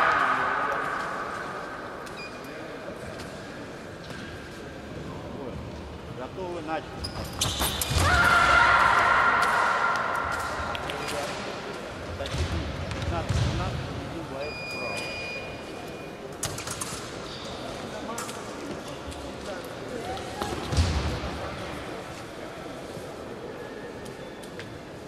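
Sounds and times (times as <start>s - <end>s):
short beep: 2.1s - 2.5s.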